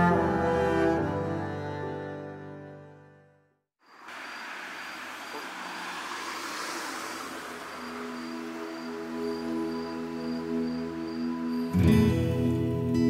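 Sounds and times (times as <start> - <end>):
steady noisy hiss: 3.9 - 10.1
soft background music: 7.8 - 13.0.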